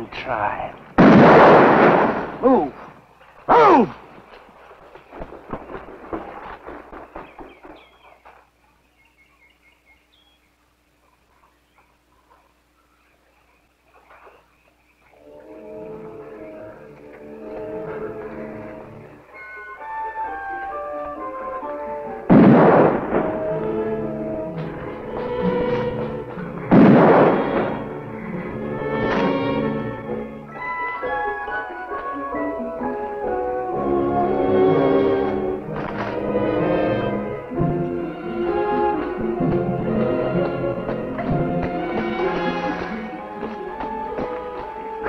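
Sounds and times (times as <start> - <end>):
orchestral score with held notes: 15.1 - 45.0
loud crashing orchestral stings: 22.3 - 30.0.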